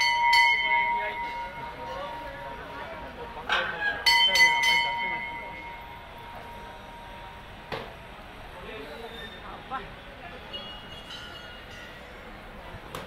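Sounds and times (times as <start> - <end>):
brass temple bell ringing: 0.0 - 2.4, 3.6 - 7.5
crowd chatter: 0.0 - 13.0.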